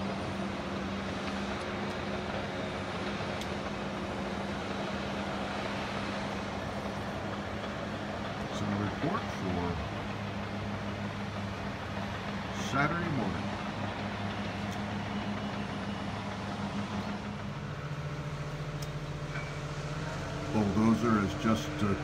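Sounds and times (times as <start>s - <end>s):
distant diesel engines humming: 0.0s - 22.0s.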